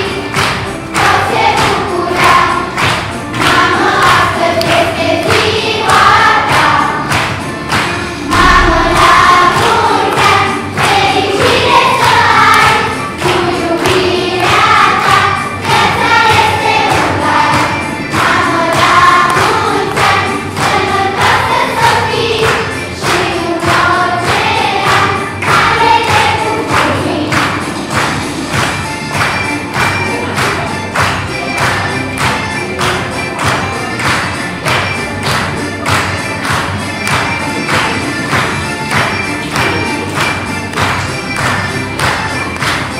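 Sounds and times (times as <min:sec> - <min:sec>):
accompaniment with steady beat: 0:00.0 - 0:42.9
children's choir singing: 0:00.0 - 0:42.9.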